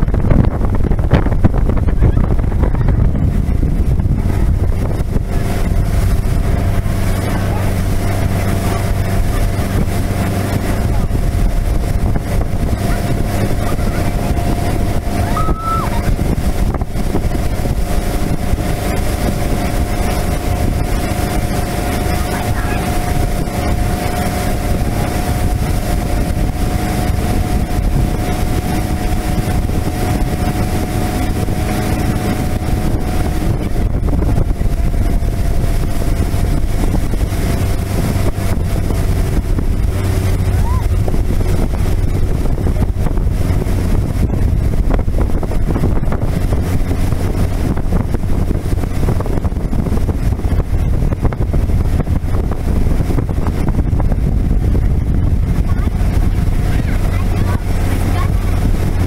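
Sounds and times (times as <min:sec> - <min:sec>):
motorboat engine running: 0:00.0 - 0:59.0
wind buffeting microphone: 0:00.0 - 0:59.0.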